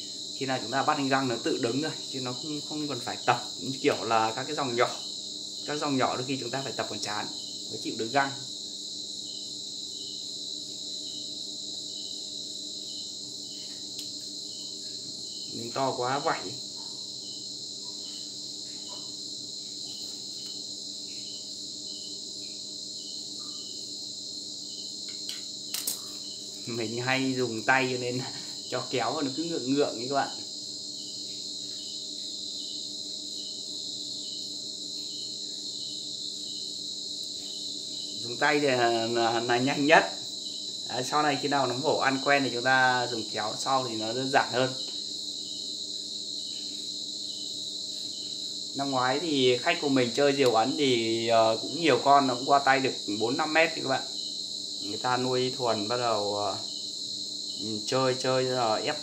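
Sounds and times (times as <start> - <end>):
crickets chirping: 0.0 - 59.0
sharp click: 25.1 - 26.1.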